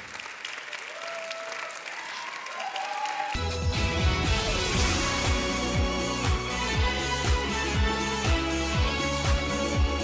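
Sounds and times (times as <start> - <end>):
audience applause: 0.0 - 3.7
music with strong bass: 3.4 - 10.0
soft music: 3.4 - 10.0.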